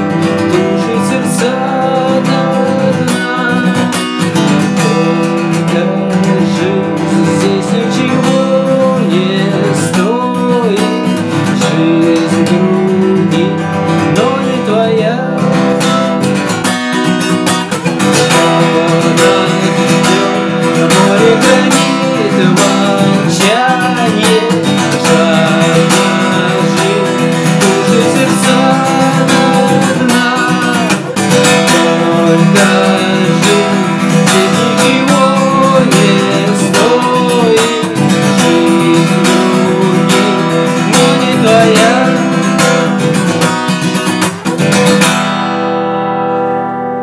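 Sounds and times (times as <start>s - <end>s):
man singing wordless melody: 0.0s - 16.2s, 17.9s - 43.6s
acoustic guitar strumming: 0.0s - 47.0s.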